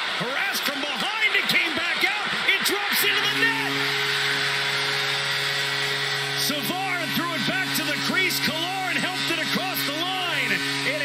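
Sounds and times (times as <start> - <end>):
crowd roaring: 0.0 - 11.0
goal horn blaring: 2.4 - 11.0.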